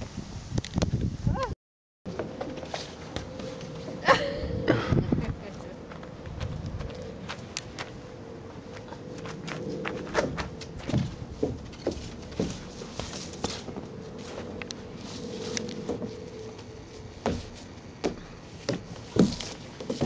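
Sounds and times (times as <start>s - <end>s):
footsteps on wood chips: 8.8s - 20.0s.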